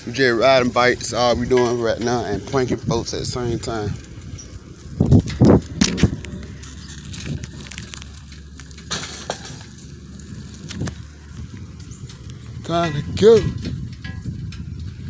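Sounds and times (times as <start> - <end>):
phone microphone handling noise: 4.0 - 15.0.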